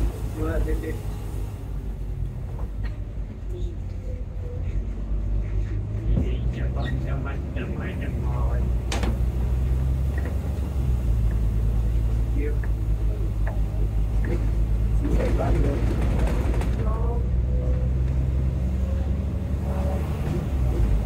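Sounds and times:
bus diesel engine drone: 0.0 - 21.0.

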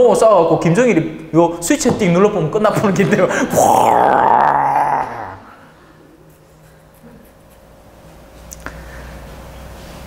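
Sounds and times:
man imitating an explosion: 3.4 - 5.6.

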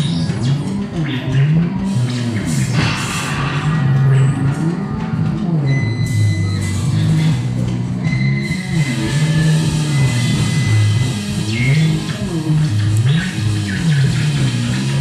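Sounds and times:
bass guitar riff: 0.0 - 15.0
high held guitar notes: 1.2 - 15.0.

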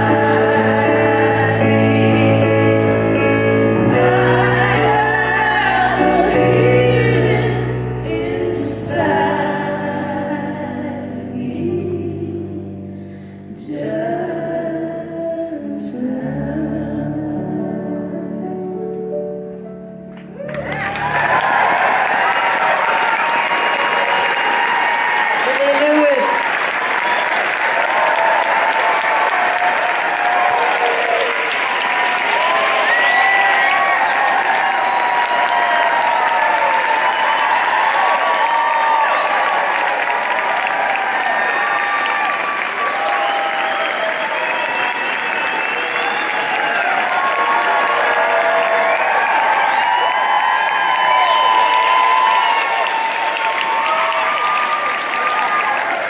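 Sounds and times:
audience clapping: 20.1 - 56.0
audience shouts and whoops: 20.4 - 56.0.

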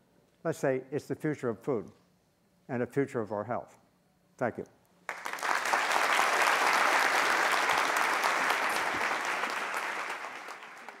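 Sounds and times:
audience applauding: 5.1 - 11.0.

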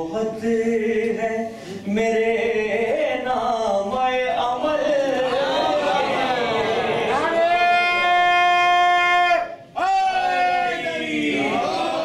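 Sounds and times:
man chanting: 0.0 - 5.8.

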